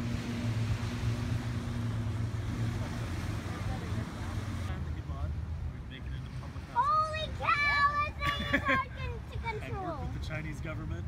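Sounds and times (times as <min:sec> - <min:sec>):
low engine-like rumble: 0:00.0 - 0:11.0
wind and surf hiss: 0:00.0 - 0:11.0.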